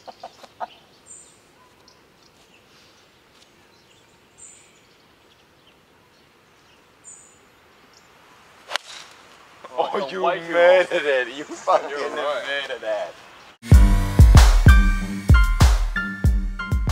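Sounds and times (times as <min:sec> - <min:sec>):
bird chirping: 0:00.0 - 0:09.0.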